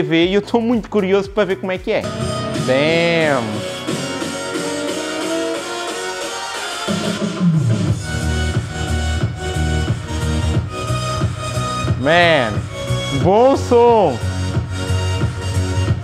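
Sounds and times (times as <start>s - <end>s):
person speaking: 0.0s - 3.8s, 12.0s - 14.2s
electronic dance music on tv speakers: 0.0s - 16.0s.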